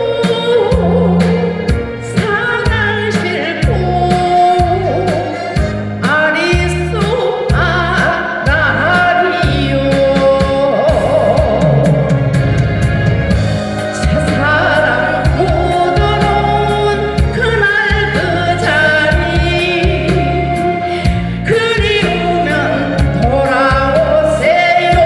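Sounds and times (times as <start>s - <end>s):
woman singing into microphone: 0.0s - 12.4s, 13.8s - 25.0s
amplified backing track with beat: 0.0s - 25.0s.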